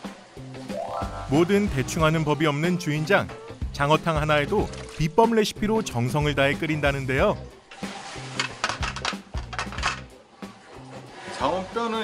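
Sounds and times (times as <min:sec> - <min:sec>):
background music: 0:00.0 - 0:12.0
metal lid clinking on pot: 0:08.6 - 0:10.1.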